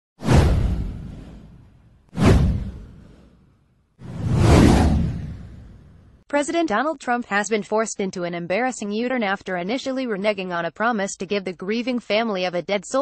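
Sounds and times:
whoosh sound effects: 0.2s - 3.4s, 4.0s - 6.1s.

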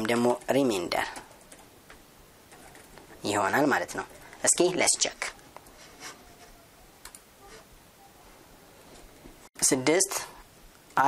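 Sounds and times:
person speaking: 0.0s - 1.5s, 3.1s - 8.7s, 9.6s - 11.0s
keyboard and mouse clicks: 0.0s - 3.1s, 7.0s - 7.3s.

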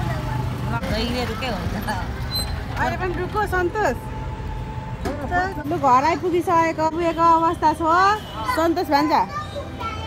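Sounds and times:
children talking and playing: 0.0s - 10.0s.

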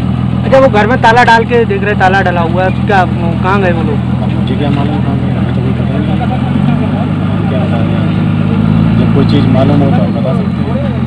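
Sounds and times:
fire engine idling: 0.0s - 11.0s.

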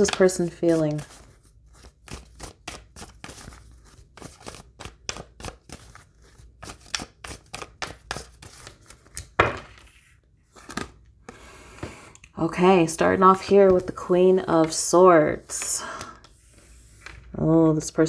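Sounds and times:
cards being shuffled: 0.0s - 11.1s.

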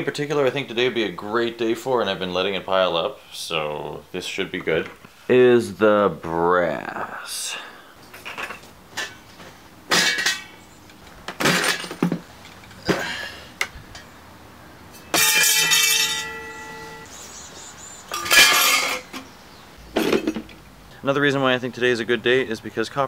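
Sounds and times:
scrap metal clanking: 8.1s - 10.6s, 11.3s - 13.3s, 14.9s - 17.1s, 18.1s - 19.4s, 20.0s - 20.6s
metal piece ringing: 14.9s - 17.2s, 18.1s - 19.3s.

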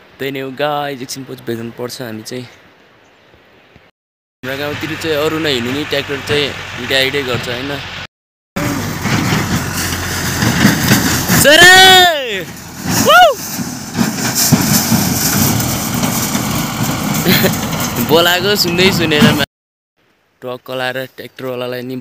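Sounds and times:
people talking: 4.4s - 7.9s, 11.3s - 13.3s, 17.3s - 19.5s, 20.4s - 22.0s
tractor engine running: 8.6s - 19.4s
man shouting a call: 11.4s - 13.4s.

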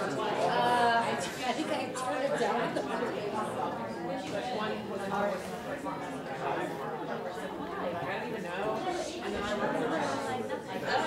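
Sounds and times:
chatter of adults talking: 0.0s - 11.0s.

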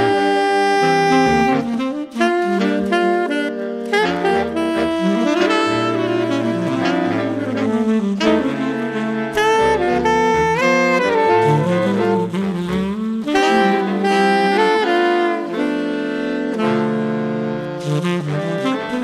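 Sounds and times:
saxophone ensemble playing jazz: 0.0s - 19.0s.

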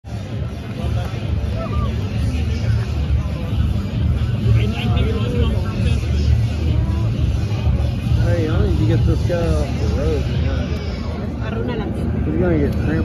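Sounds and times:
crowd chattering: 0.0s - 13.0s.

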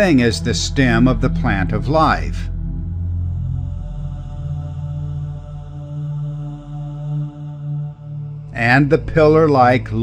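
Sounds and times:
chant-like drone music: 0.0s - 10.0s.

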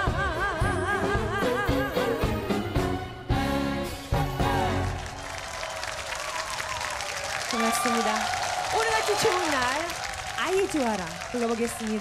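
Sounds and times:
music: 0.0s - 5.3s
audience applauding: 4.6s - 12.0s
voices over clapping: 5.2s - 12.0s.

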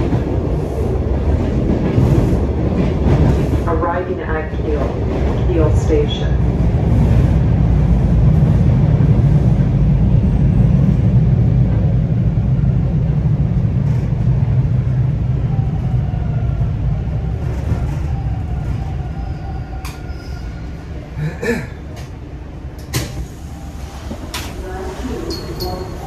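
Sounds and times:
subway train wheels rumbling: 0.0s - 26.0s.

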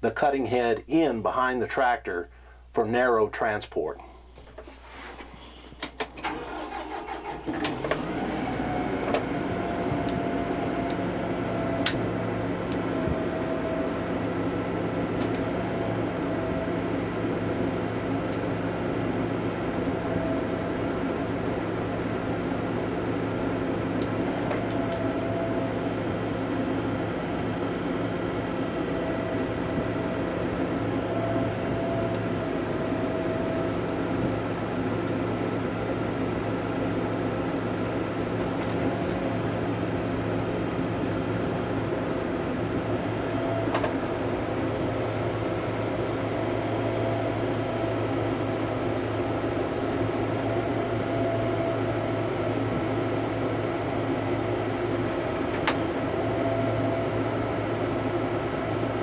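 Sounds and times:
hydraulic whine: 5.6s - 59.0s
tractor diesel engine running: 5.8s - 59.0s.

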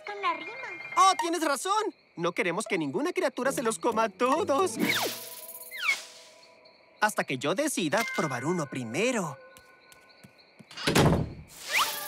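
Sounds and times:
door shutting heavy thunk: 10.8s - 11.4s.

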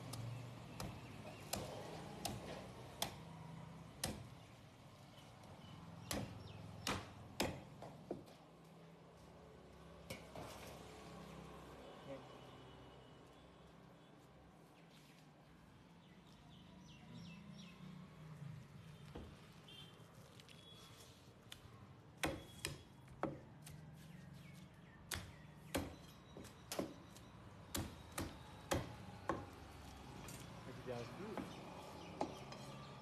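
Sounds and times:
knife chopping fish on wood: 0.1s - 3.2s, 4.0s - 4.4s, 6.0s - 8.3s, 22.2s - 23.8s, 25.1s - 29.7s, 31.4s - 32.5s.

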